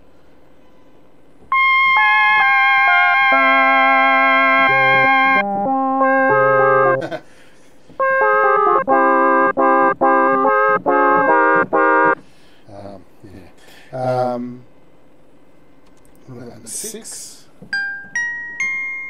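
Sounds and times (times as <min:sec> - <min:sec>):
synthesizer chords: 0:01.5 - 0:07.2, 0:08.0 - 0:12.2.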